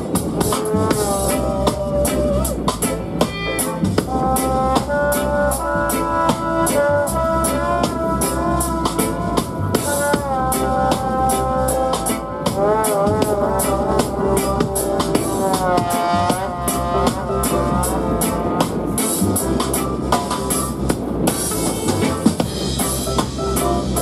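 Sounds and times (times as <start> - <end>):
reggae band playing: 0.0 - 24.0
saxophone and trombone melody: 0.0 - 24.0.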